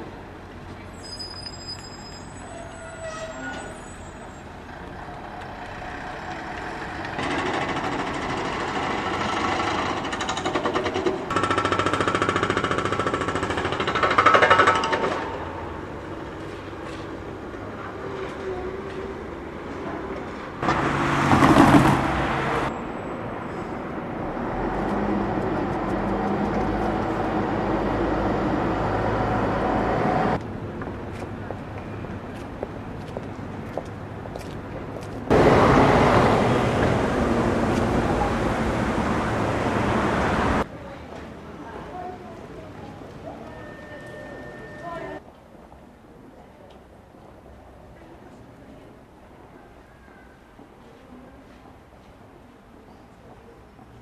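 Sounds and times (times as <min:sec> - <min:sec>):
vehicles passing: 0:03.8 - 0:45.2.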